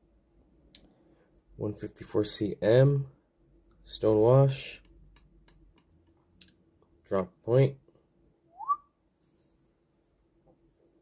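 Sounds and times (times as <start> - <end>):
rising whistled note: 8.5 - 8.9.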